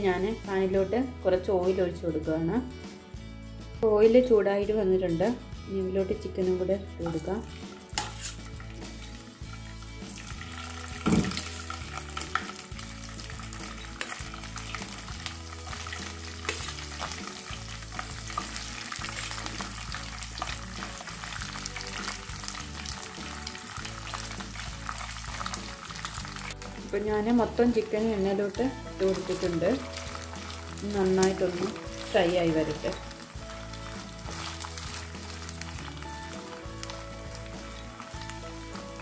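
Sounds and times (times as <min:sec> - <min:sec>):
chicken frying in hot oil: 0:07.9 - 0:27.2, 0:28.0 - 0:39.0.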